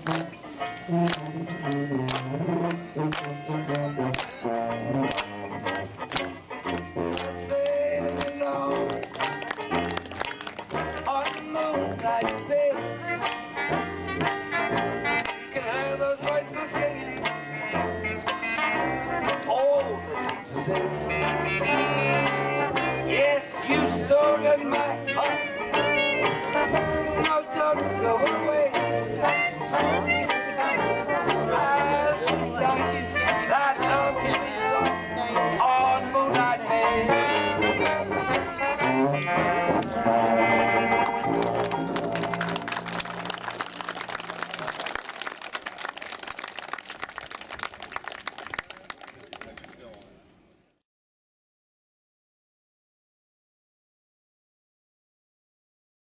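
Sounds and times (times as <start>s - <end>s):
traditional jazz band playing: 0.0s - 46.2s
person singing: 6.7s - 9.9s, 10.8s - 13.8s, 14.5s - 17.9s, 18.7s - 42.4s
audience applause: 9.1s - 11.0s, 40.9s - 50.0s.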